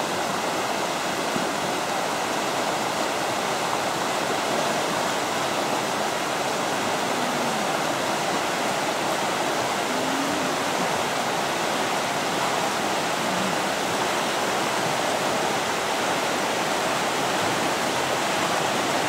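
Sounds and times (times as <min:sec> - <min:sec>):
river rapids rushing: 0:00.0 - 0:19.0.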